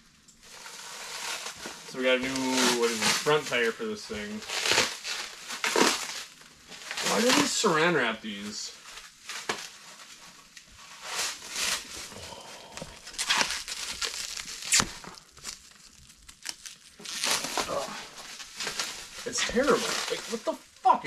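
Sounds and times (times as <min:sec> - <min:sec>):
plastic wrap crinkling and tearing: 0:00.3 - 0:21.0.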